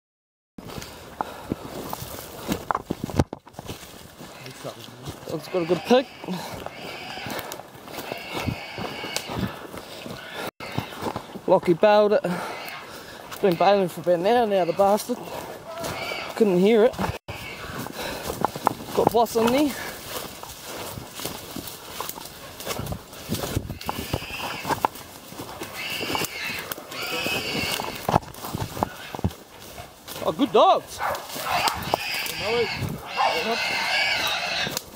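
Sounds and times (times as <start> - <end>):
footsteps crunching through dry leaves: 0.6 - 34.9
high drawn-out animal cries: 5.3 - 9.5, 15.7 - 16.4, 17.3 - 17.8, 23.6 - 24.8, 25.6 - 28.1, 31.0 - 34.8
twigs snapping: 18.2 - 30.3, 31.0 - 32.4, 34.2 - 34.9.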